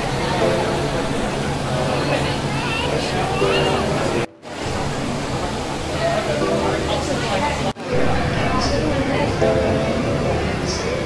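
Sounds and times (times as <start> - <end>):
background music: 0.0 - 11.0
busy queue area hiss: 0.0 - 11.0.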